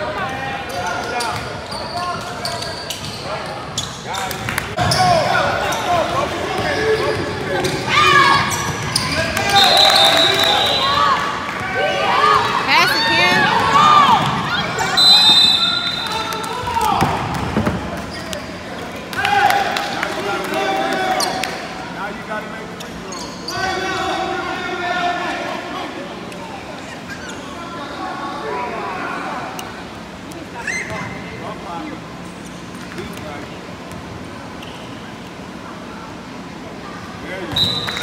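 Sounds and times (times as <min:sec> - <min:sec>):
basketball bouncing on court: 0:08.5 - 0:09.2.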